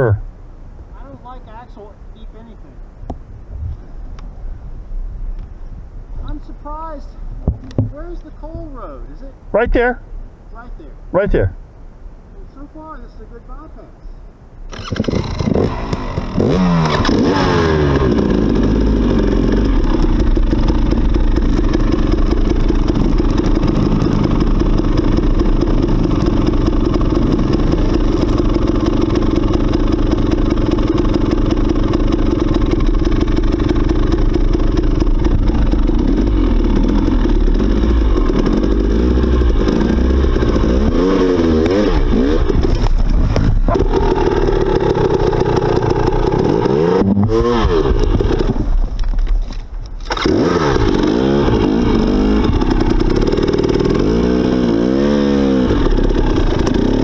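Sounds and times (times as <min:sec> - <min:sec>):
dirt bike engine revving: 0:14.7 - 0:48.8, 0:50.0 - 0:57.0.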